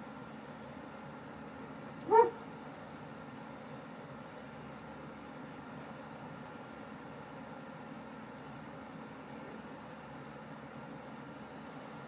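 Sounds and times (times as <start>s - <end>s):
faint steady hiss: 0.0s - 12.0s
dog yipping in its sleep: 2.0s - 2.4s.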